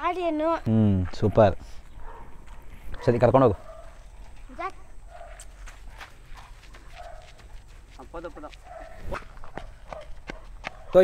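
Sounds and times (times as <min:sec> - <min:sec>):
footsteps on dirt track: 0:01.0 - 0:11.0.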